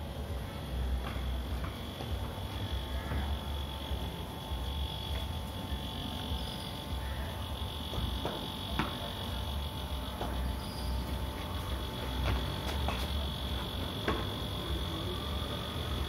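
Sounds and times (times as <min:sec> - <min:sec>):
high-pitched insect buzzing: 0:02.1 - 0:16.0.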